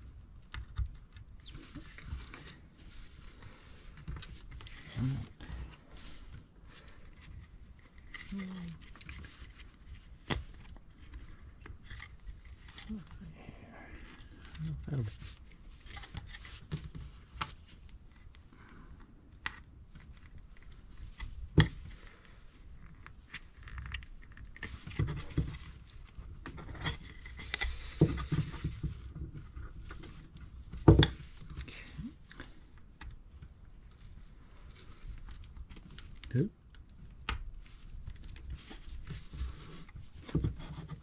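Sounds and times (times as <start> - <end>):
light clicks and scrapes of parts: 0.0 - 13.0, 14.0 - 41.0.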